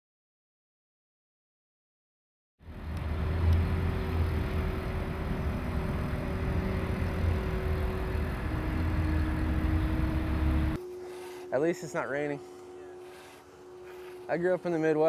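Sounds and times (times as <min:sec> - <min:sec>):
small engine running: 0:02.6 - 0:15.0.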